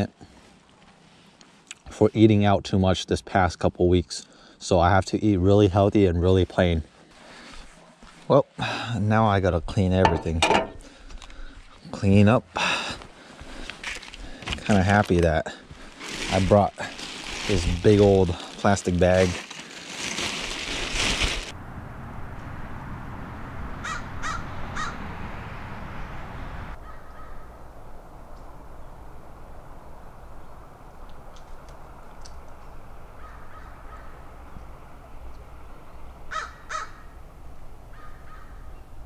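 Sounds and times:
plastic bag rustling: 13.8s - 21.5s
bird harsh calls: 23.8s - 25.0s, 33.2s - 37.2s, 37.9s - 38.9s
low outdoor hiss: 25.1s - 39.0s.

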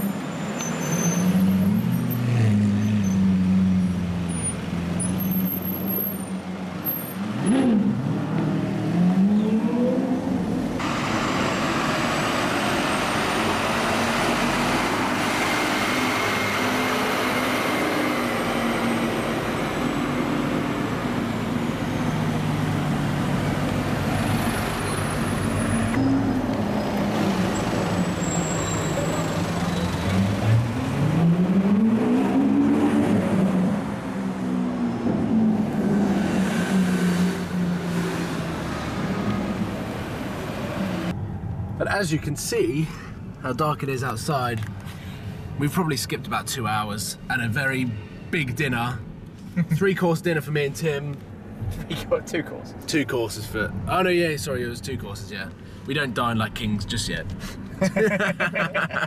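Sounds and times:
car engines revving: 0.0s - 41.2s
traffic noise: 0.0s - 59.0s.

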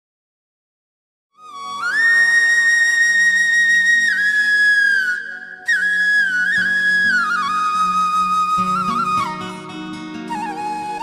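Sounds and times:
flute playing: 1.4s - 11.0s.

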